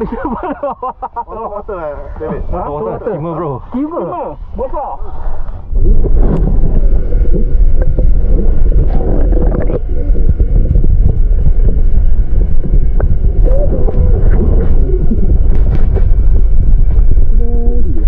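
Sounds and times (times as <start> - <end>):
muffled underwater water rumble: 2.2 - 18.0.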